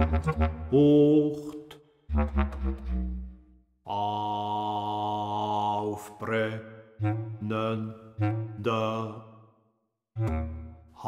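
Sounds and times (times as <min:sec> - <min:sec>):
chamber music low notes: 0:00.0 - 0:03.4, 0:07.0 - 0:09.2, 0:10.2 - 0:11.0.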